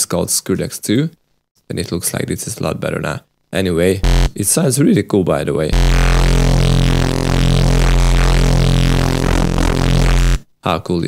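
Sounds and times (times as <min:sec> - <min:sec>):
synthesizer low bass note: 0:04.0 - 0:04.4, 0:05.7 - 0:10.4.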